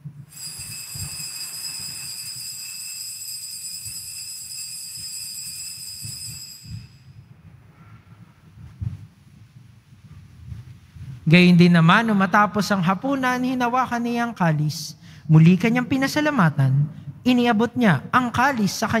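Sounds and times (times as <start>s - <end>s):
altar bells ringing: 0.3s - 7.2s.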